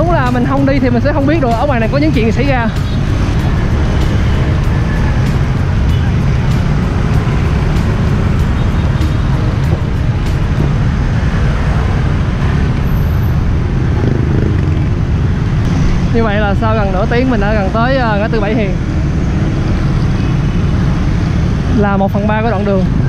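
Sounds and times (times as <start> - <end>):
motorbikes and cars passing: 0.0 - 23.0.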